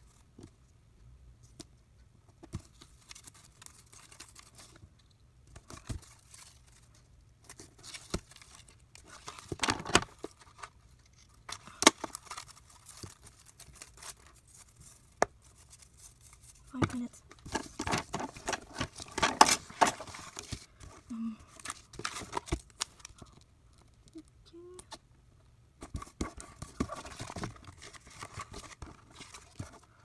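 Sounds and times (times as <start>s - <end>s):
paper rustling: 5.6s - 21.0s.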